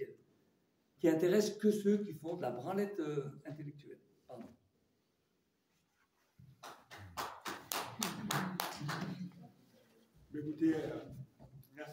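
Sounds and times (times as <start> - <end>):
hand clapping: 6.5 - 9.4.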